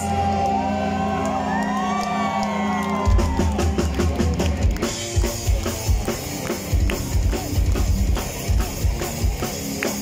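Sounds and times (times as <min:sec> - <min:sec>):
crowd whooping: 0:00.0 - 0:09.8
electric guitars and bass: 0:00.0 - 0:10.0
drum kit fast beat: 0:03.0 - 0:10.0.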